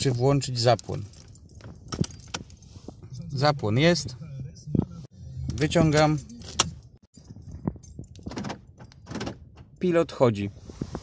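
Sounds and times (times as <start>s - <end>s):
keys jingling: 0.3s - 3.2s, 5.6s - 9.1s.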